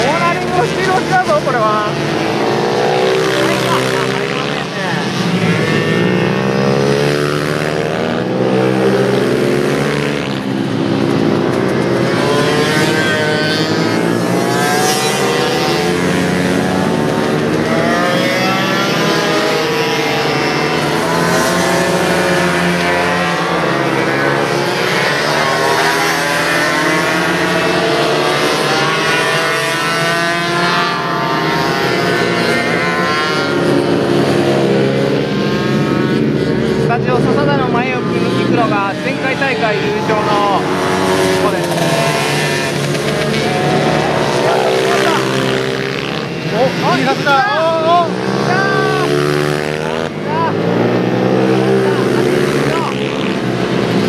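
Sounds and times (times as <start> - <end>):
minibike engines revving: 0.0 - 54.0.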